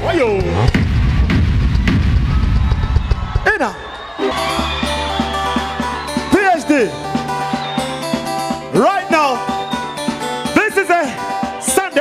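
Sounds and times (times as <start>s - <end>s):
heavy bass: 0.0s - 8.8s
drum kit hits: 0.4s - 3.3s
live band music: 4.2s - 12.0s.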